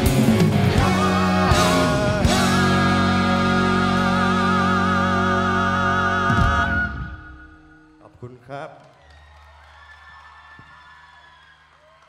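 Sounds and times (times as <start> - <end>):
audience cheering and applause: 8.6 - 12.0.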